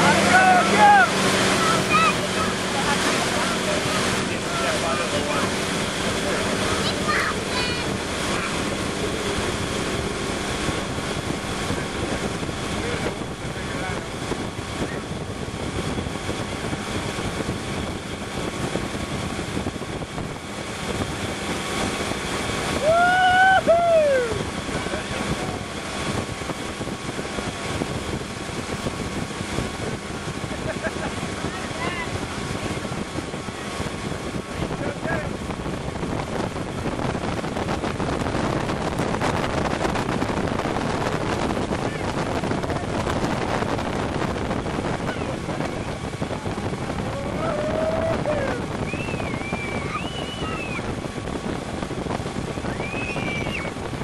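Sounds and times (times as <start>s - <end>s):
motorboat engine running: 0.0s - 54.0s
wake and spray rushing: 0.0s - 54.0s
wind buffeting microphone: 0.0s - 54.0s
person whooping: 22.8s - 24.5s, 47.1s - 50.8s.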